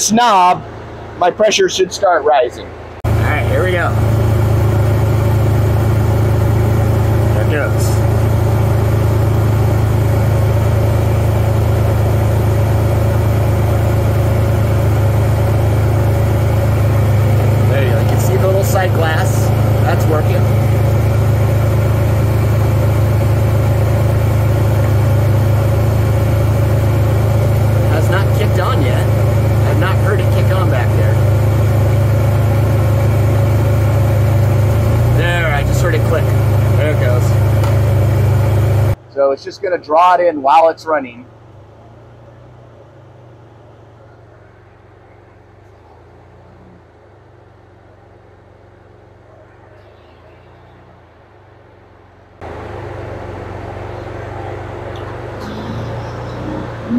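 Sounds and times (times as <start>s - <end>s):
car engine idling: 0.0s - 56.9s.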